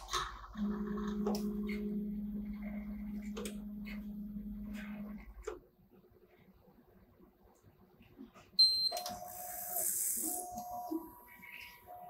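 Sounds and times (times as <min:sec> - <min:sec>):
high-pitched analyzer beep: 0:08.6 - 0:12.0.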